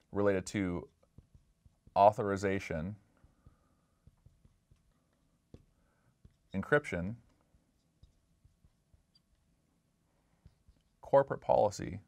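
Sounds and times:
marker pen tapping on glass: 0:00.9 - 0:02.0, 0:03.2 - 0:06.5.

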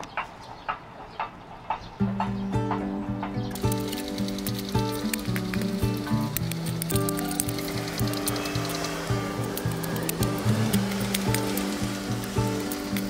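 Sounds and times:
background music with held notes: 0:02.0 - 0:13.0
shovel digging stony soil: 0:03.5 - 0:13.0.

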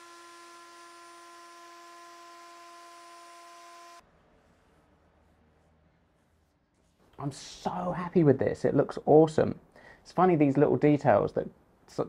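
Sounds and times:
router whining: 0:00.0 - 0:04.0.

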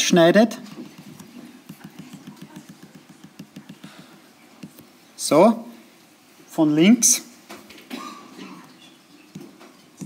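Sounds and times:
pen tapping and scratching: 0:00.7 - 0:04.0, 0:04.6 - 0:04.9, 0:09.3 - 0:10.0.

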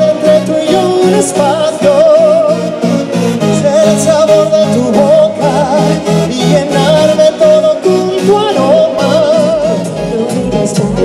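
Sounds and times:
lead vocal singing: 0:00.0 - 0:11.0
live band music: 0:00.0 - 0:11.0.

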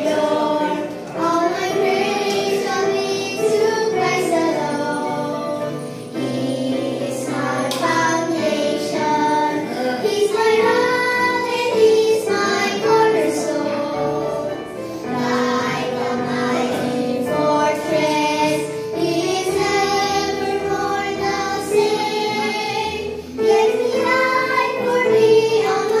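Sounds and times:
girls singing into microphones: 0:00.0 - 0:26.0.

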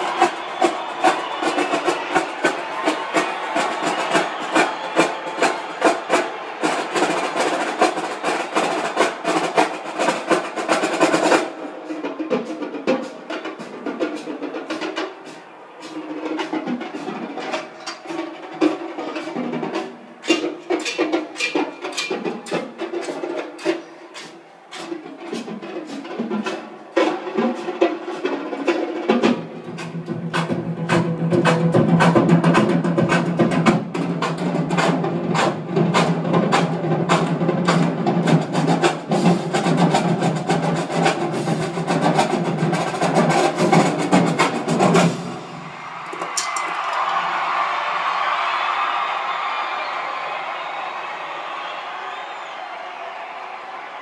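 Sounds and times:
snare drum rolls: 0:00.0 - 0:54.0.

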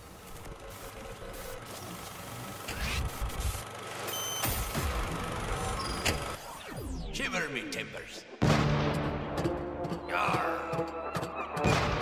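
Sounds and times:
short high beep: 0:04.1 - 0:04.7.

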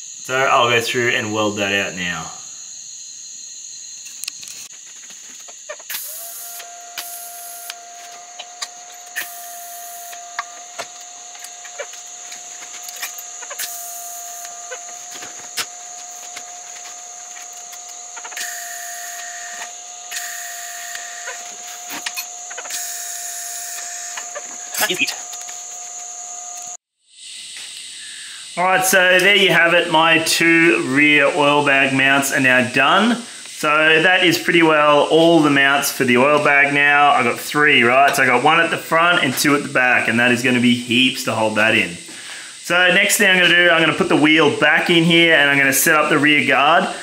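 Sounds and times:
electric welding arc hissing: 0:03.5 - 0:29.8.

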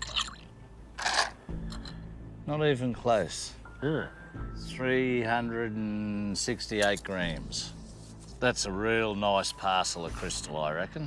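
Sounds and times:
stones clinking and rattling: 0:01.0 - 0:02.0.

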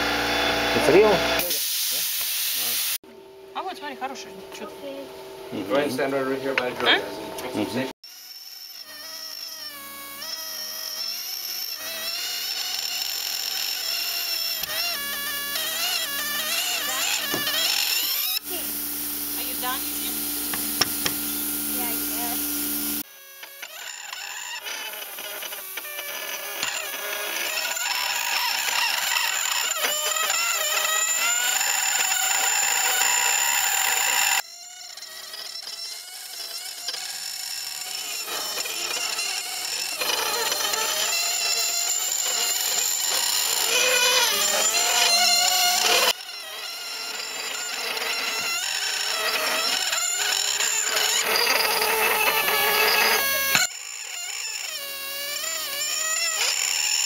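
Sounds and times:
air scribe buzzing: 0:03.8 - 0:57.0.

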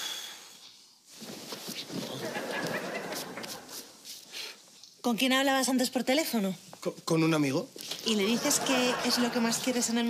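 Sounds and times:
studio audience laughter: 0:02.1 - 0:03.8, 0:08.2 - 0:10.0.

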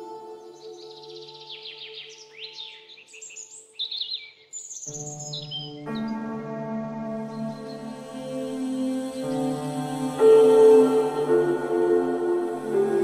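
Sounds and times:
ambient meditation music: 0:00.0 - 0:13.0
birds chirping: 0:00.0 - 0:13.0.

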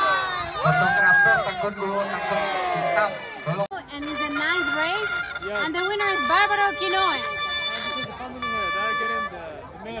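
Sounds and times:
people talking in crowd: 0:00.0 - 0:10.0
held multi-tone note: 0:05.6 - 0:09.5.

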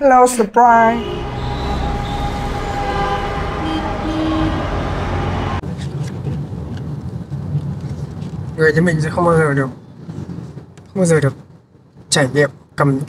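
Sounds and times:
car horn: 0:00.9 - 0:05.6
street traffic of motorbikes and cars: 0:01.0 - 0:12.8.

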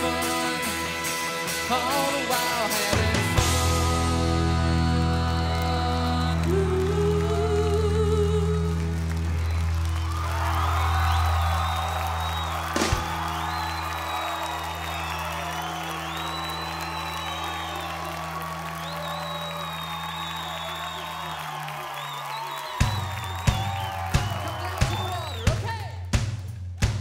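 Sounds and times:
rock band final chord: 0:00.0 - 0:05.2
crowd cheering and whistling: 0:00.0 - 0:08.0, 0:08.7 - 0:25.9.

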